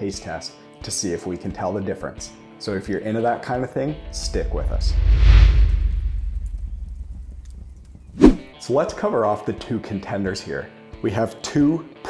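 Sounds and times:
flame burst whoosh: 0:04.2 - 0:08.5
faint crackles: 0:05.2 - 0:08.2.

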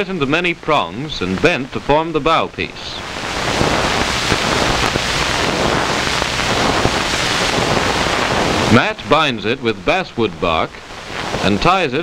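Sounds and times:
loud rushing film hiss: 0:00.0 - 0:12.0.

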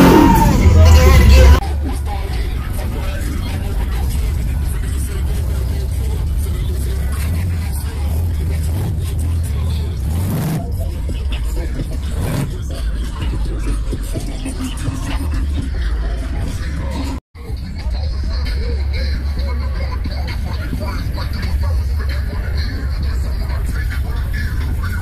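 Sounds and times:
car engine idling: 0:00.0 - 0:25.0
people talking: 0:00.0 - 0:25.0.

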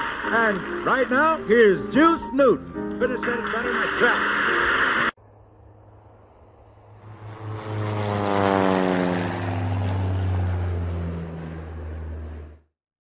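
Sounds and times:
aircraft engine drone passing: 0:00.0 - 0:12.7.

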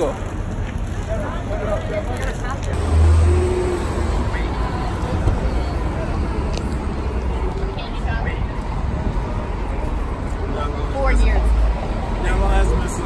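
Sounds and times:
faint chatter of passers-by: 0:00.0 - 0:13.0
traffic rumble: 0:00.0 - 0:13.0
vehicle passing: 0:00.0 - 0:13.0.

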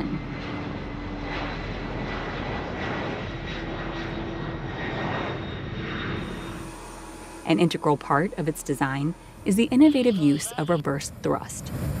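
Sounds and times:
jet engines at takeoff: 0:00.0 - 0:12.0.

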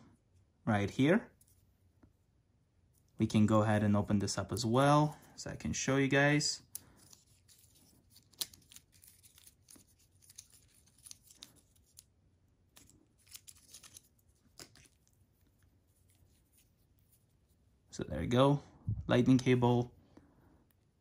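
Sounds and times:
cable rustling and clicking: 0:06.6 - 0:17.4.

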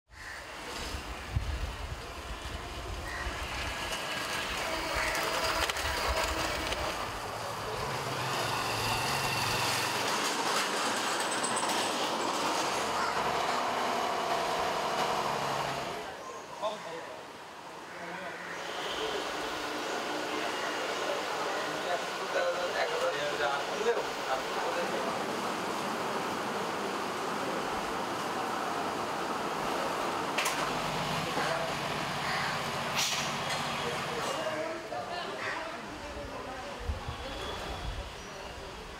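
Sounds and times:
road traffic passing: 0:00.4 - 0:38.9.

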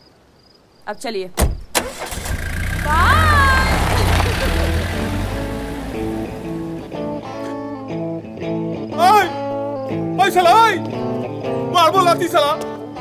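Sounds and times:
car engine rumbling: 0:01.4 - 0:07.2
music: 0:05.1 - 0:13.0.

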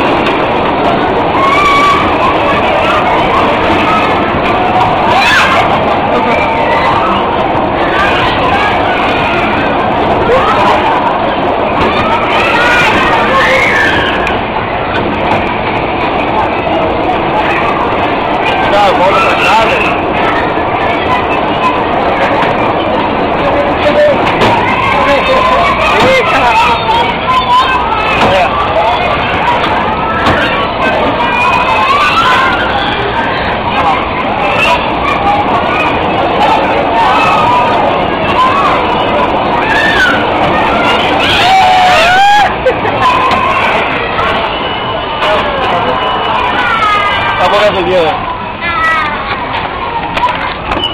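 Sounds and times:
bumper cars rumbling: 0:00.0 - 0:50.9
people shouting and whooping: 0:00.0 - 0:50.9
voices calling out: 0:00.0 - 0:50.9.

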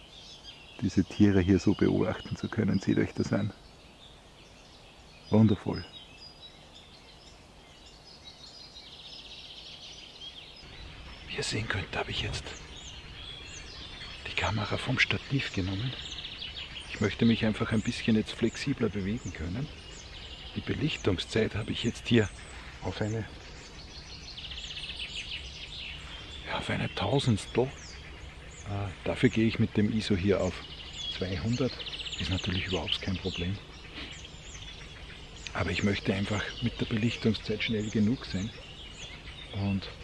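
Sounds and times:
bird trill: 0:00.0 - 0:40.0
faint high bird chirps: 0:00.0 - 0:40.0.

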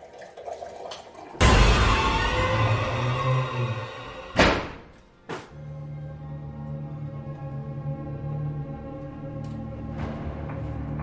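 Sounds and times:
low music drone: 0:01.4 - 0:05.0.

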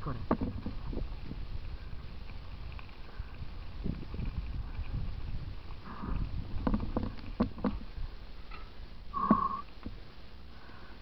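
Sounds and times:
bikes knocking on rocks: 0:00.0 - 0:01.5, 0:02.2 - 0:10.0.

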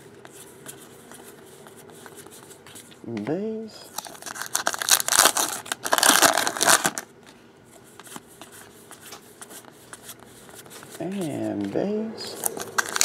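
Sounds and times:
card pack wrapper crinkling: 0:03.9 - 0:07.1, 0:12.4 - 0:13.0
cards rustling and clicking: 0:03.9 - 0:13.0.

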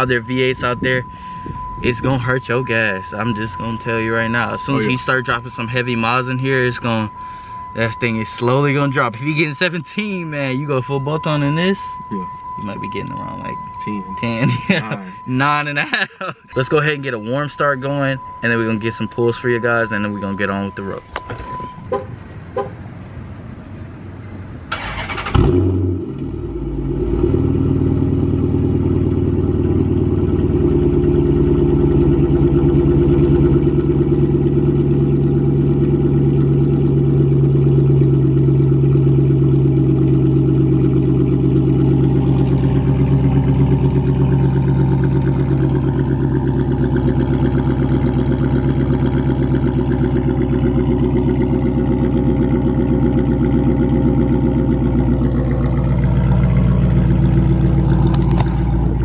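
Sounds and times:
car engine starting and idling: 0:00.0 - 0:59.0
engine revving: 0:24.7 - 0:59.0.

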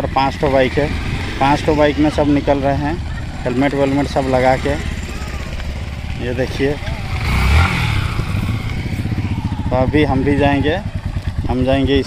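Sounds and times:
motorcycle engine idling: 0:00.0 - 0:12.0
motorcycle passing by: 0:00.0 - 0:12.0.

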